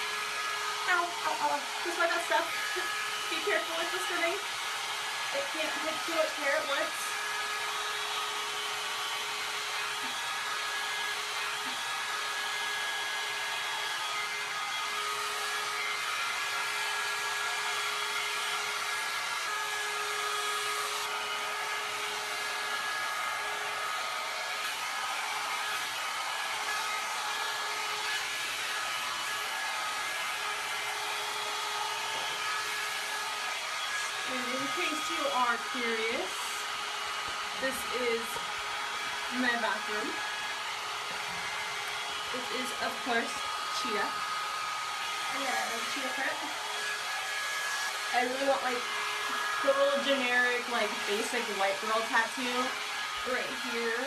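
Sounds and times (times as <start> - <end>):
hot air brush blowing air: 0.0 - 54.0.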